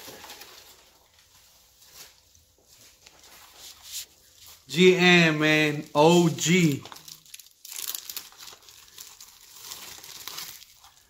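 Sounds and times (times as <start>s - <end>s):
packing paper and plastic bag rustling: 0.0s - 11.0s.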